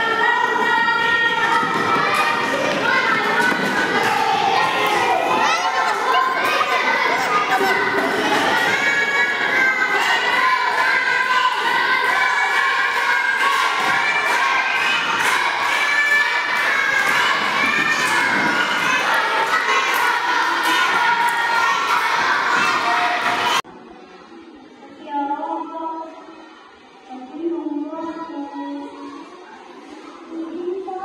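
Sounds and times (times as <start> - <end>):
children shouting and cheering: 0.0 - 31.0.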